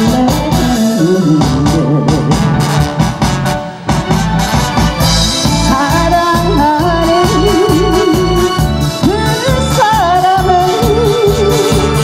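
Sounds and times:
bass notes: 0.0s - 12.0s
keyboard melody: 0.0s - 12.0s
drum beat: 1.4s - 8.8s.

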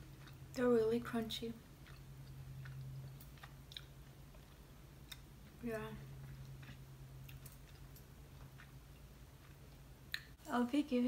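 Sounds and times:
candy crunching while chewed: 1.6s - 10.3s.

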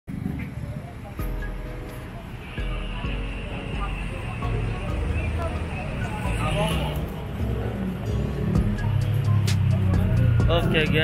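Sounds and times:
traffic rumble: 0.1s - 11.0s.

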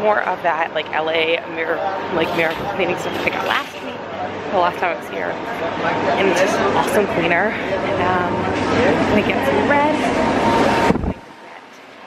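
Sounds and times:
traffic noise: 0.0s - 12.0s
wind noise: 10.0s - 11.3s.

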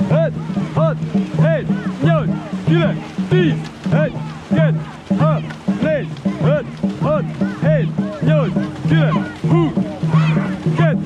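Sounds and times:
paddles splashing: 0.0s - 11.0s
rhythmic shouted calls: 0.0s - 11.0s
water rushing past hull: 0.0s - 11.0s.

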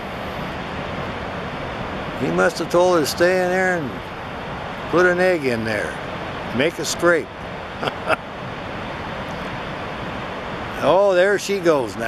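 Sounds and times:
waterfall and river roaring: 0.0s - 12.0s.

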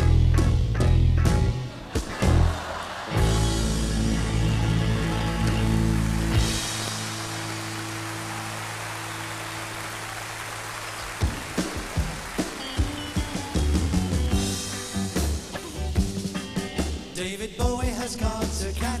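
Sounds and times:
drum strikes and guitar: 0.0s - 7.4s, 11.2s - 19.0s
rock band sustained chord: 0.0s - 17.2s
audience applause: 1.7s - 14.5s.

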